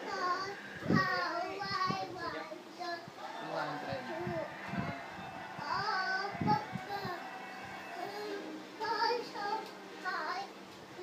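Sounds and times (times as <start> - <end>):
child singing: 0.0 - 3.1, 5.6 - 7.2, 8.0 - 11.0
faint music: 0.0 - 11.0.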